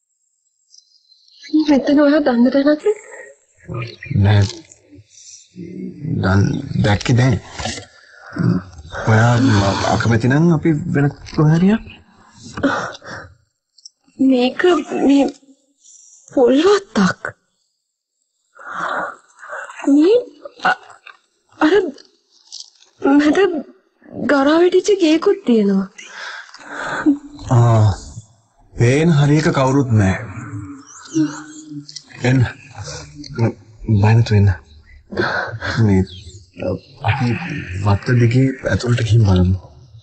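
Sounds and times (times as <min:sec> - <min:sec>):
breathy hissing sound: 0:07.5 - 0:10.2, 0:18.5 - 0:19.8, 0:26.0 - 0:28.2
person speaking in broken phrases: 0:08.4 - 0:11.9, 0:14.2 - 0:15.4, 0:28.8 - 0:39.8.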